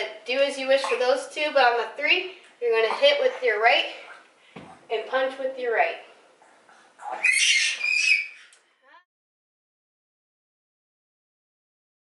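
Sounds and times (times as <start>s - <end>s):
high-pitched squeal call: 7.2s - 8.5s.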